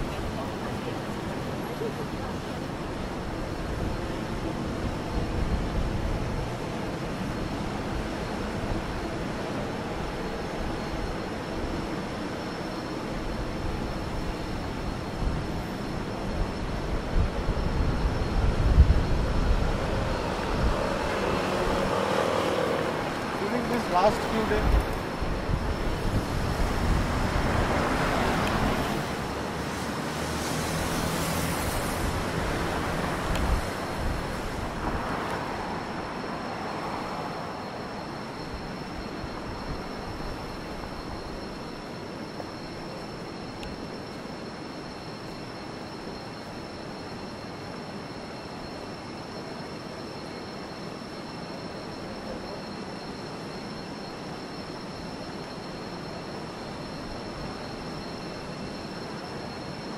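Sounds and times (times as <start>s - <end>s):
traffic hum: 0.0s - 59.8s
vehicles passing: 16.8s - 41.2s.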